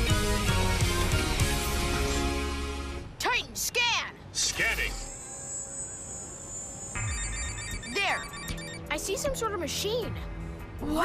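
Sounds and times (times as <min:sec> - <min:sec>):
background music: 0:00.0 - 0:03.2, 0:07.0 - 0:11.0
short electronic beeps: 0:04.5 - 0:08.9
electronic ringing tone: 0:04.9 - 0:09.0.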